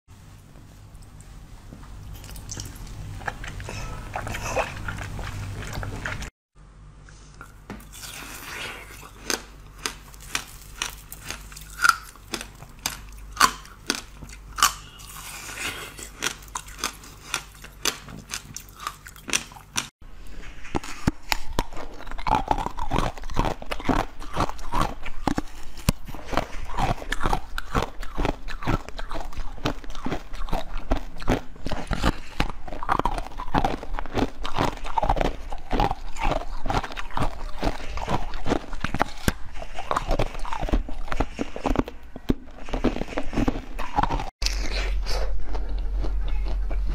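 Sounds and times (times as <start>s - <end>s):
ice crunching between teeth: 7.9s - 19.9s, 20.6s - 46.7s.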